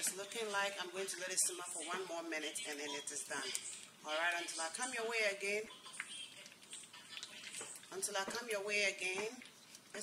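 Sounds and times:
stew bubbling in a pot: 0.0 - 10.0
wooden spoon stirring: 0.0 - 10.0.

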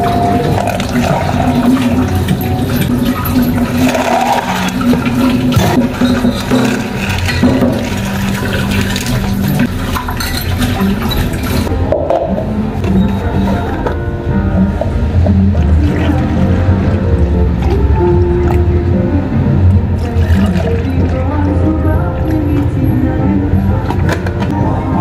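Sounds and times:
liquid pouring into cup of ice: 0.0 - 11.7, 20.0 - 21.2
background music: 0.0 - 25.0.

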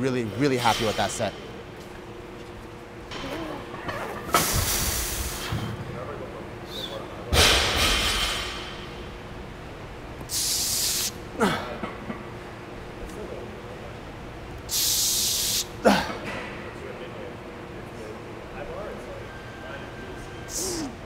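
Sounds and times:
sharp hiss of breath: 10.3 - 11.1, 14.7 - 15.7.

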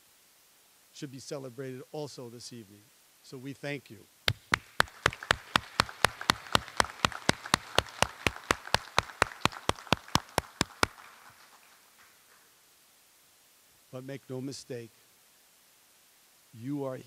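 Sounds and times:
audience applause: 4.3 - 12.4
man clapping near microphone: 4.3 - 12.4.

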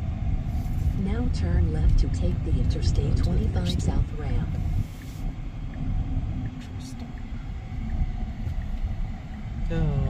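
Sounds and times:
road and tyre rumble in cabin: 0.0 - 10.0.

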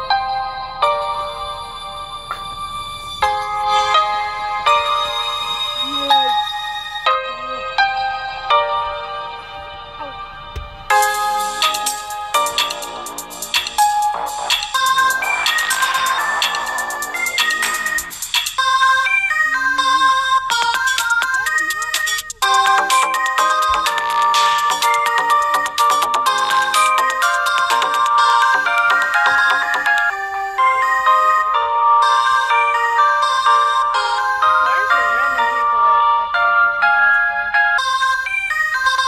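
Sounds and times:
rapid pitched synth notes: 10.9 - 30.2.

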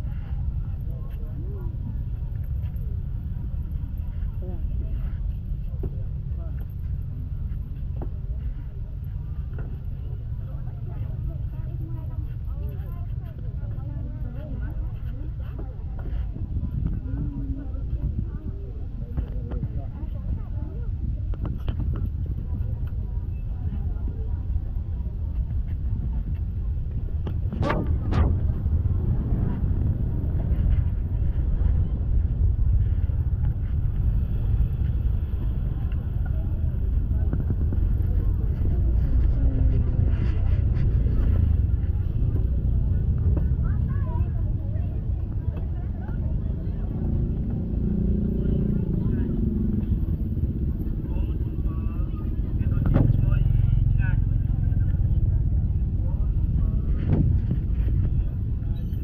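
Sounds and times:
motorbike engines rumbling: 0.0 - 59.0
people talking: 0.0 - 59.0.

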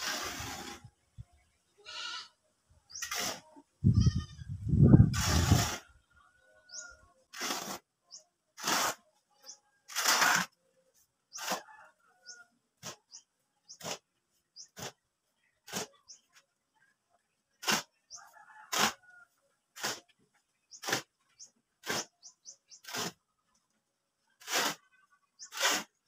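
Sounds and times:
shovel scraping sand and cement: 0.0 - 1.0, 2.9 - 6.1, 6.7 - 10.6, 11.3 - 15.0, 15.6 - 16.3, 17.6 - 19.1, 19.7 - 23.3, 24.4 - 26.0
goat bleating: 1.8 - 2.4, 3.8 - 4.6.

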